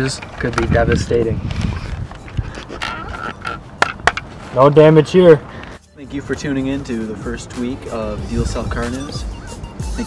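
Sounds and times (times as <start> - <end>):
helmet rustling and knocking: 3.5 - 4.8.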